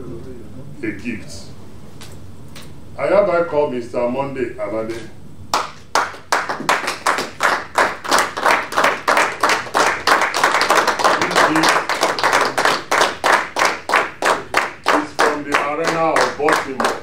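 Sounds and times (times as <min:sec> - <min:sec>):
people clapping in rhythm: 0:05.5 - 0:17.0.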